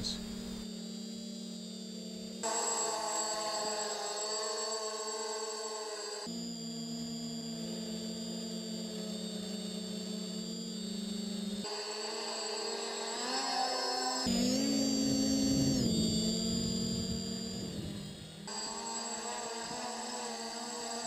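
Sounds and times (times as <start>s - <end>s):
quadcopter motors whining: 0.0s - 21.0s.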